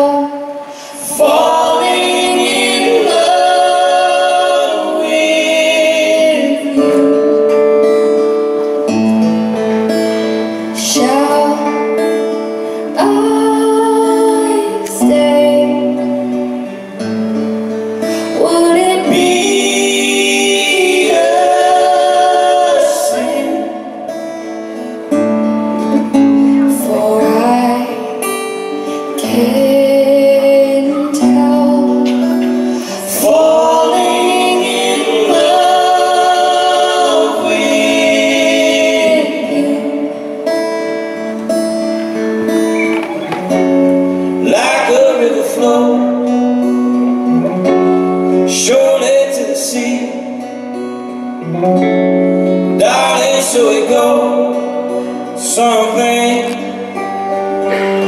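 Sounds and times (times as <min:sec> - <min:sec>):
guitars strummed and picked: 0:00.0 - 0:58.0
vocal harmony singing: 0:00.0 - 0:58.0.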